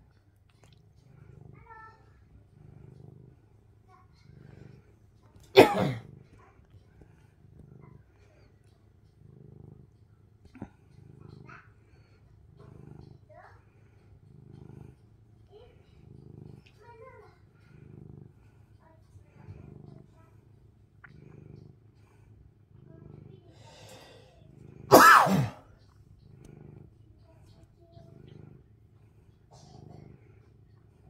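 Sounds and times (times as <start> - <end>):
cat purring: 0.0 - 31.0.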